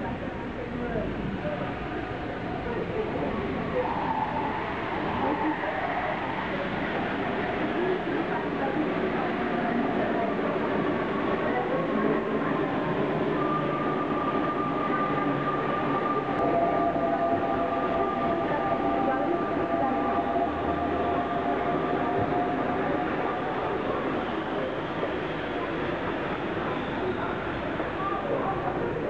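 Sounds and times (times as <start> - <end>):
train rumbling: 0.0 - 29.0
high whining tones: 12.9 - 25.4.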